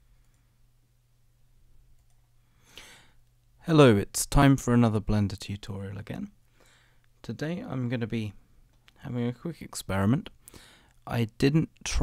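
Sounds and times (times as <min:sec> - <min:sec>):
faint low room hum: 0:00.0 - 0:12.0
soft breath: 0:02.4 - 0:03.3, 0:06.5 - 0:07.1, 0:10.4 - 0:11.0.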